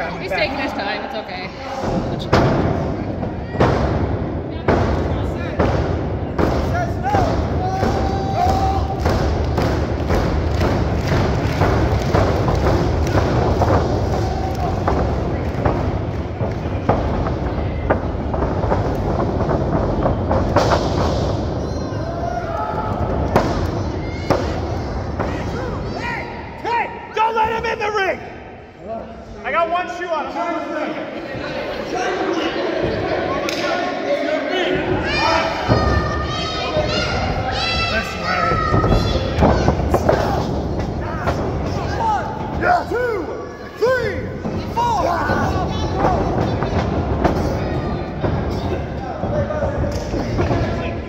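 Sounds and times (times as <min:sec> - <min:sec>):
bodies moving on wrestling ring: 0:01.8 - 0:25.8.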